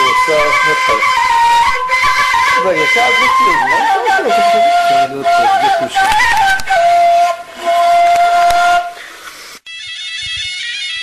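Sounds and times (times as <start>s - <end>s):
reed flute long held notes: 0.0s - 11.0s
traditional music piece: 0.0s - 11.0s.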